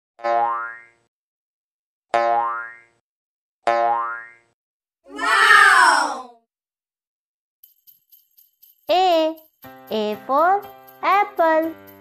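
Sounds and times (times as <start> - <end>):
cartoon boing sound effects: 3.7 - 4.5.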